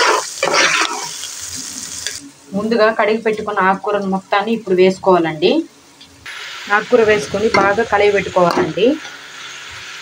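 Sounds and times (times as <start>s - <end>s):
stirring in a pan: 0.0s - 2.2s
leaves sizzling in a pan: 0.0s - 10.0s.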